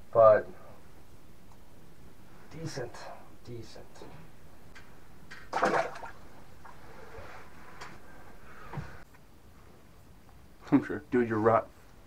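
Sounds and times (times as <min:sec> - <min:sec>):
water splash: 0:05.5 - 0:06.2.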